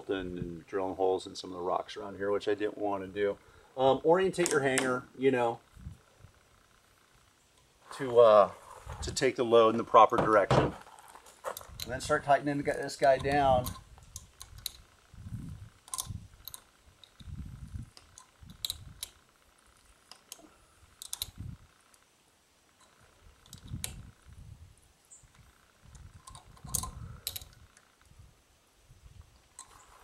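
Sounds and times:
wrench metal clicks: 13.0 - 14.9, 15.8 - 17.3, 18.0 - 19.2, 21.0 - 21.4, 25.9 - 27.9.

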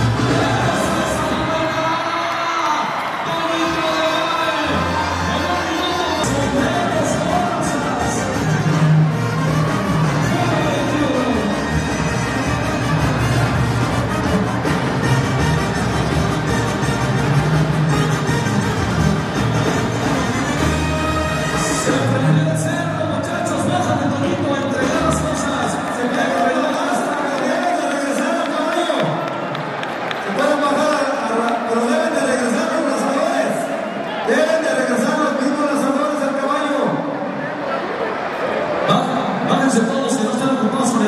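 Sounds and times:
brass band music: 0.0 - 2.1, 3.1 - 27.2
crowd cheering and shouting: 0.0 - 41.0.

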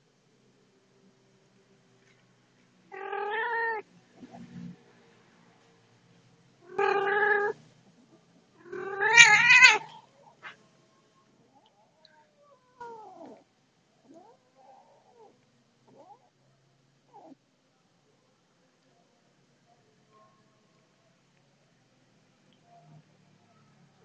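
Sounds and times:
cats yowling: 2.9 - 3.8, 6.7 - 7.6, 8.6 - 10.0, 12.5 - 13.4.

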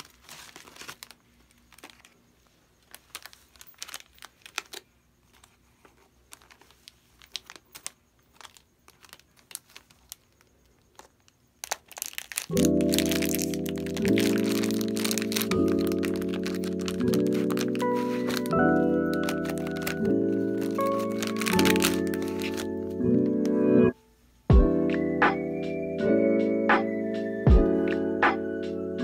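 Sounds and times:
plastic bag crinkling: 0.0 - 23.5
background music with slow chords: 12.5 - 29.0.

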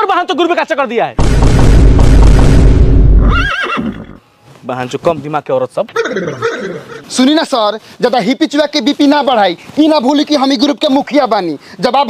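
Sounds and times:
deep rumbling boom: 1.2 - 3.4
quavering high cry: 3.2 - 4.2.

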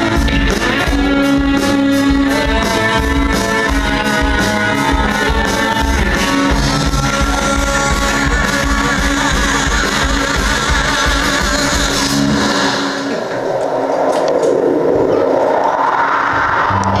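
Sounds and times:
bass guitar: 0.0 - 13.2, 16.5 - 17.0
distorted electric guitar: 0.0 - 17.0
drums: 0.0 - 17.0.

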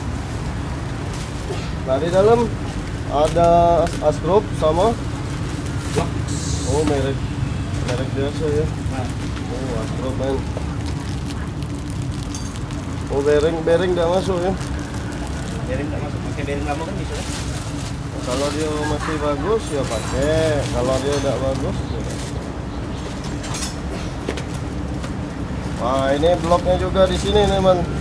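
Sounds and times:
low background rumble: 0.0 - 28.0
plastic wrapping crinkling: 8.9 - 22.5.

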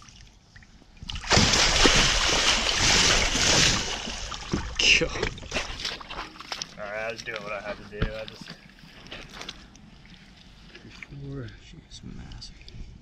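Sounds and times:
heavy splashing in shallow water: 1.1 - 6.8.

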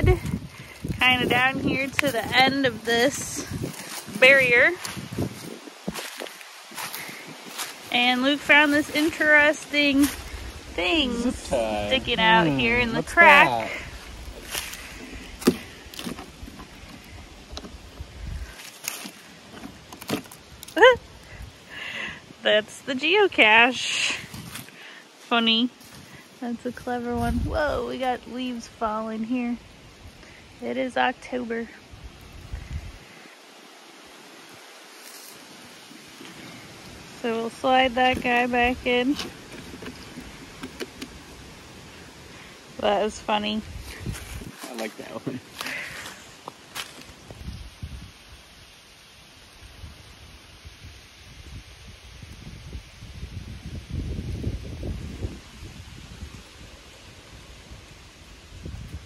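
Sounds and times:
low outdoor hiss: 1.0 - 59.0
small knocks and scrapes on wood: 39.1 - 41.2.

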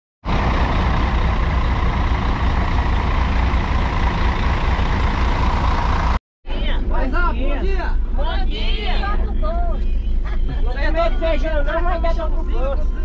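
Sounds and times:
diesel engine idling: 0.2 - 6.2.

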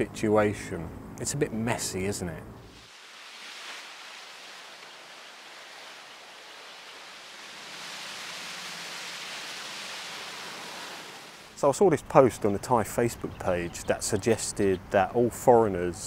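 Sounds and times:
water rushing and splashing: 2.8 - 11.6.

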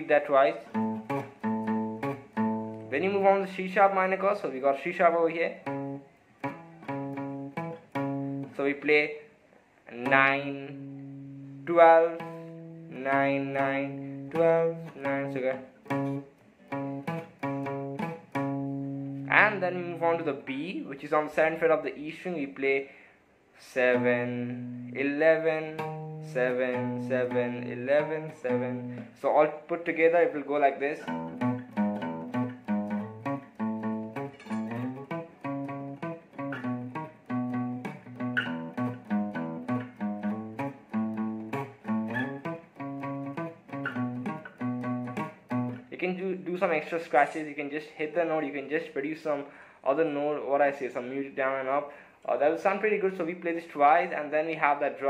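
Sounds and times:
acoustic guitar plucked bass notes: 0.0 - 4.3, 5.4 - 8.8, 10.0 - 20.7, 23.9 - 29.2, 30.3 - 46.4.

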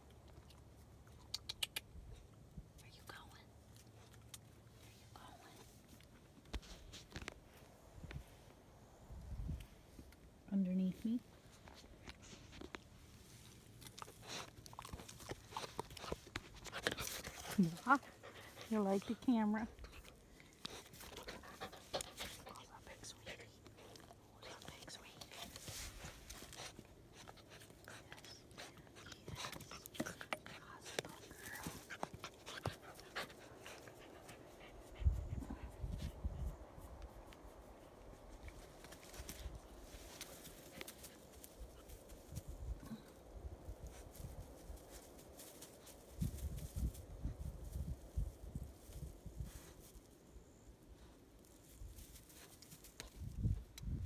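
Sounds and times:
small clicks and rustles: 2.8 - 8.2, 51.4 - 54.0
puppy sniffing and panting: 11.2 - 47.0.

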